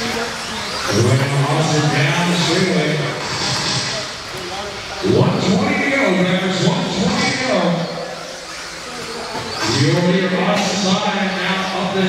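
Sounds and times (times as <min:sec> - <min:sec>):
rc car motors humming: 0:00.0 - 0:12.0
announcer over public address: 0:00.9 - 0:03.2, 0:05.0 - 0:08.2.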